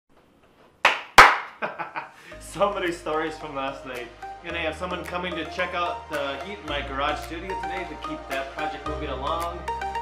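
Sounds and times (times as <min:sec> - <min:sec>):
man clapping hands: 0:00.8 - 0:01.6.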